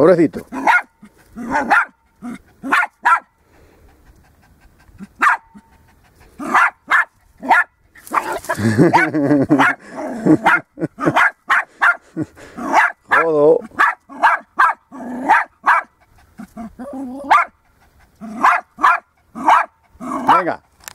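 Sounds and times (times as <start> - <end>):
small dog barking: 0.5 - 3.4, 5.2 - 5.7, 6.4 - 12.0, 12.6 - 16.0, 16.8 - 17.6, 18.2 - 20.4.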